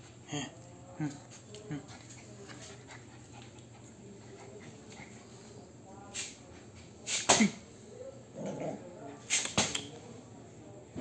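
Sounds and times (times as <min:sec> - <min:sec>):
soft low puppy sound: 0:00.0 - 0:06.8.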